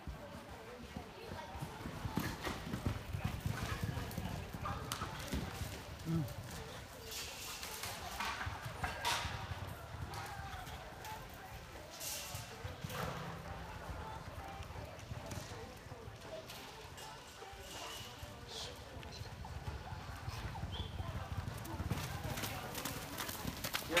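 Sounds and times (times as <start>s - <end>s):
horse hoofbeats on soft dirt: 0.0s - 24.0s.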